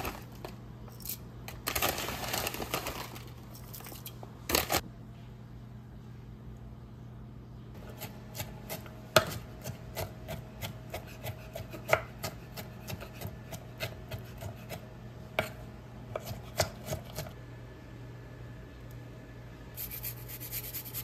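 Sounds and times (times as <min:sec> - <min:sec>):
knife chopping on wooden board: 0:07.9 - 0:17.3.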